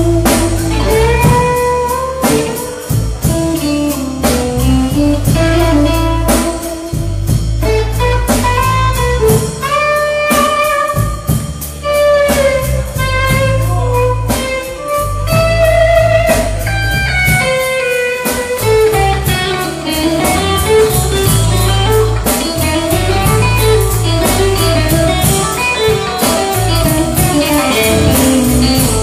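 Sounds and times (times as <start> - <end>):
drum kit with ride cymbal: 0.0 - 29.0
electric bass line: 0.0 - 29.0
electric guitar lead: 0.0 - 29.0.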